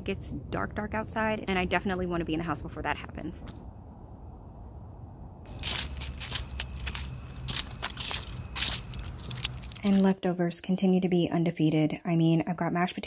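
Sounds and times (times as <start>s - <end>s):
low rumble: 0.0s - 9.9s
footsteps crunching on dry ground: 5.5s - 10.1s.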